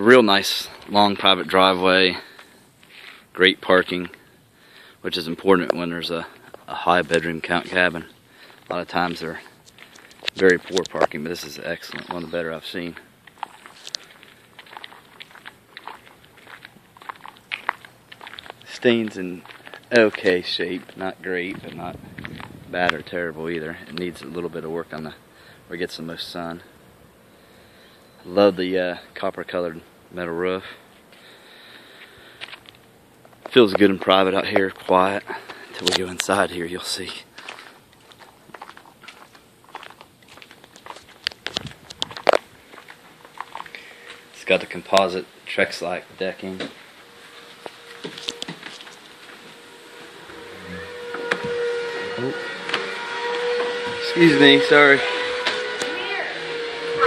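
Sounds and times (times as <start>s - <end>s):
footsteps on pavement: 5.5s - 24.5s, 30.9s - 45.1s, 46.1s - 50.5s.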